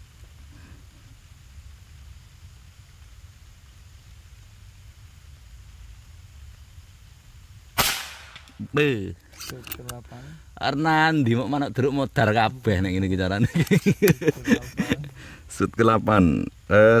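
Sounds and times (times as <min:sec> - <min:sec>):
low steady rumble: 0:00.0 - 0:17.0
air rifle shot: 0:07.8 - 0:08.6.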